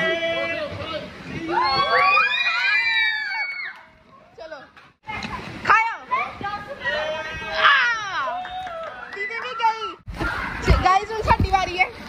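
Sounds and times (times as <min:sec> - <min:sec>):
people screaming: 0:01.5 - 0:03.9.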